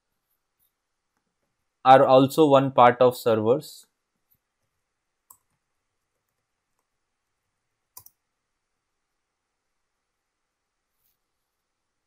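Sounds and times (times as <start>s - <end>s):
computer keyboard and mouse clicks: 5.3s - 5.6s, 7.9s - 8.2s.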